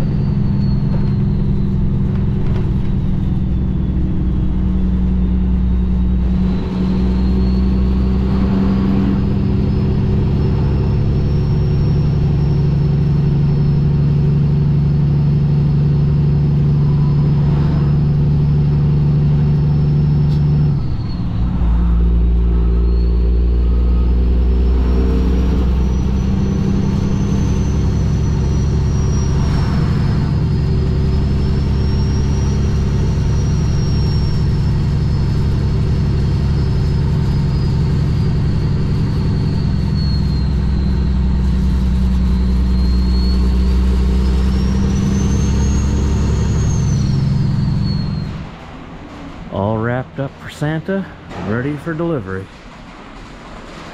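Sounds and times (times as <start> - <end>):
faint high whistle: 0.0 - 2.1, 2.7 - 8.4, 16.7 - 48.6
truck diesel engine drone: 0.0 - 53.9.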